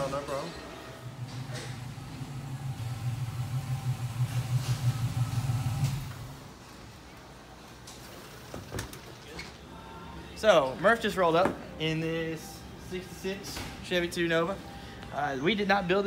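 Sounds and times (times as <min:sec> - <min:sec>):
car engine idling: 0:00.8 - 0:06.6.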